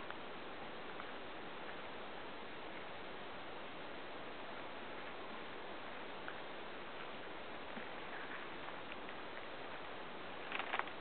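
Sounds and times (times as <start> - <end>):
steady hiss: 0.0 - 11.0
sharp crackles: 10.4 - 11.0.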